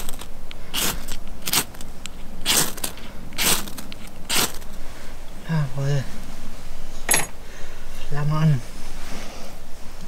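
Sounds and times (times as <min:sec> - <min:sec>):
ferro rod scraping: 0:00.0 - 0:01.8, 0:02.4 - 0:04.8.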